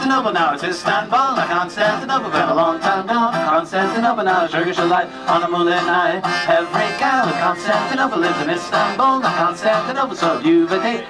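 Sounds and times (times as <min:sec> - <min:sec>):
accordion: 0:00.0 - 0:11.0
men singing: 0:00.0 - 0:11.0
strummed acoustic guitar: 0:00.0 - 0:11.0.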